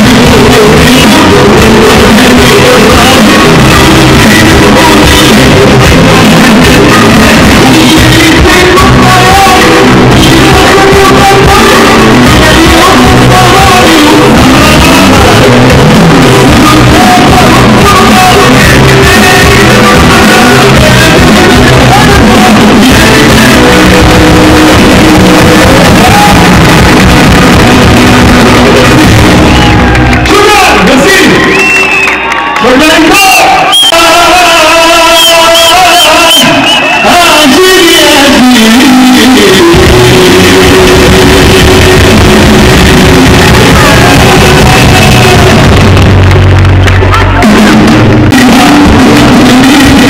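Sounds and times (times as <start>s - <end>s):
live band with keyboards and singing: 0.0s - 50.0s
crowd shouting: 24.9s - 37.6s, 41.0s - 46.1s.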